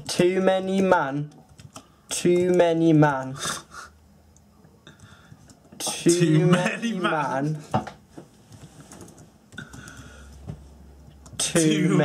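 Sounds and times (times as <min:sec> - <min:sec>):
keyboard typing clicks: 0:00.8 - 0:02.7, 0:08.5 - 0:10.1.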